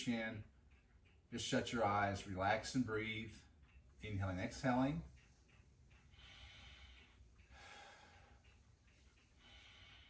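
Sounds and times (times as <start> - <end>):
man breathing slowly: 5.2 - 10.0.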